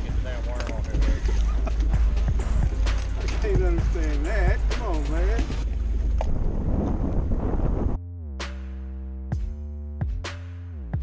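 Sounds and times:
man's voice: 0.0s - 1.5s, 3.2s - 5.6s
wind buffeting microphone: 0.0s - 8.0s.

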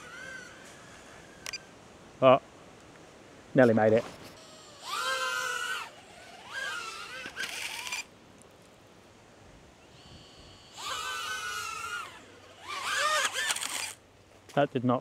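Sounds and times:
drone motors whining: 0.0s - 1.8s, 4.2s - 8.1s, 9.8s - 14.0s.

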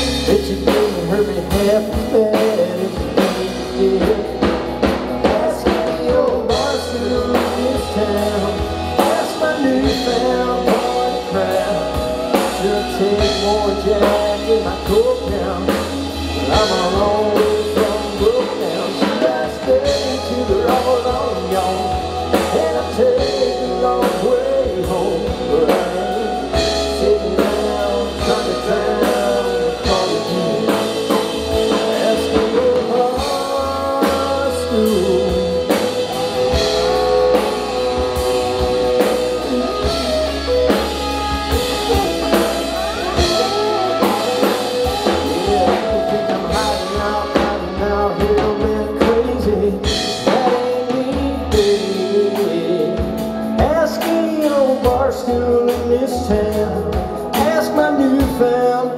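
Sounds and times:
bass guitar: 0.0s - 58.9s
drum kit: 0.0s - 58.9s
lead electric guitar bending notes: 0.0s - 58.9s.

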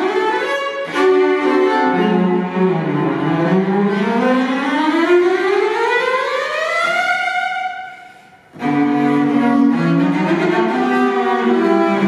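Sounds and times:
cello glissando: 0.0s - 12.0s
cellos playing held notes: 0.0s - 12.0s.

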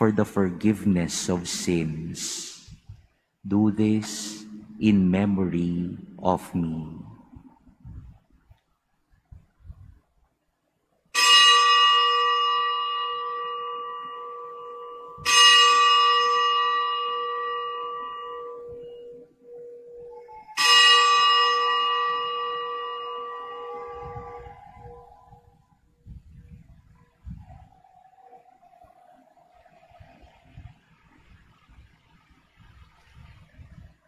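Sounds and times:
bell ringing: 11.2s - 25.4s.

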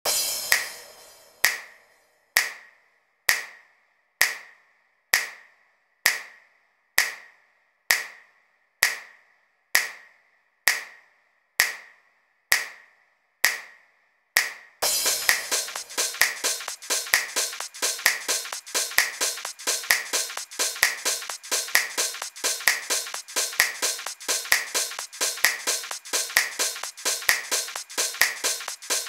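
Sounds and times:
electronic handclap: 0.5s - 0.8s, 1.4s - 1.8s, 2.4s - 2.7s, 14.4s - 29.0s.

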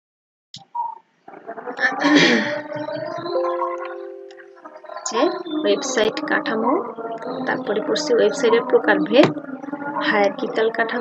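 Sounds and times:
woman speaking: 1.8s - 3.3s, 5.1s - 9.4s, 10.0s - 11.0s.

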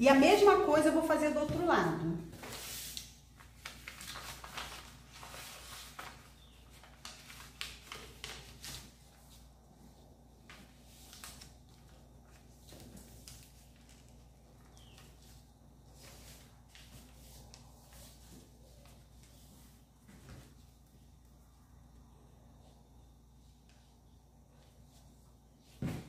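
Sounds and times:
paper rustling and crinkling: 2.2s - 20.8s.

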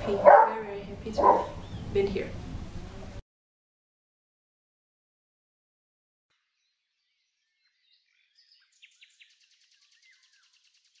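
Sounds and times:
birds chirping and whistling: 1.2s - 2.0s, 6.6s - 11.0s.

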